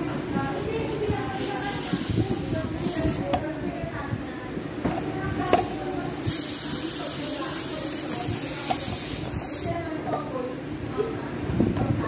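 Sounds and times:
freezer compressor rumbling: 0.0s - 12.0s.

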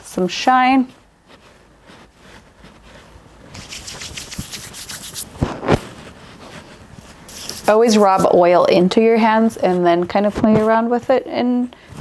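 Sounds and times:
palms rubbing together: 0.8s - 11.6s.

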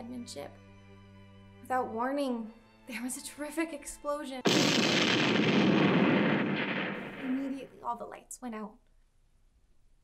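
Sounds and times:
loud explosion blast: 4.5s - 7.8s.

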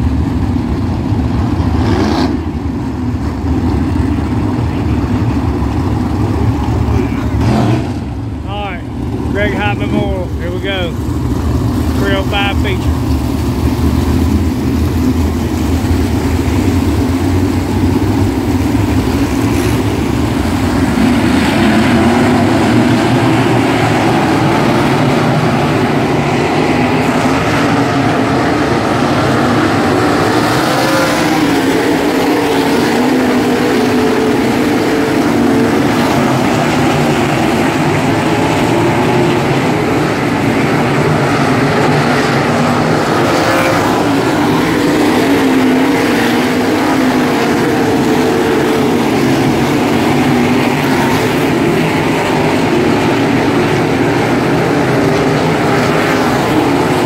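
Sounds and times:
racing car engines passing: 0.0s - 57.0s.

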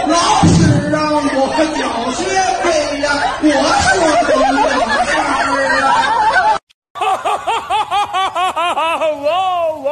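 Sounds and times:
audience noise: 0.0s - 6.6s
man singing and laughing: 0.9s - 9.9s.

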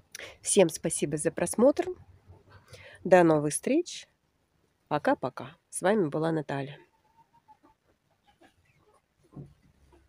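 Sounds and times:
poultry calling: 6.8s - 9.1s.

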